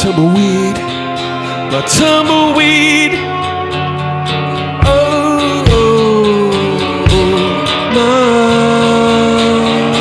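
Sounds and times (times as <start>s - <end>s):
electric guitar sustained note: 0.0s - 10.0s
strummed acoustic guitar: 0.0s - 10.0s.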